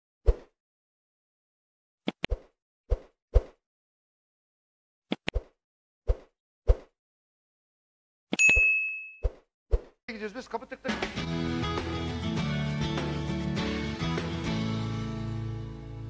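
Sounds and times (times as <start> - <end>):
bright bell ding: 8.4 - 9.2.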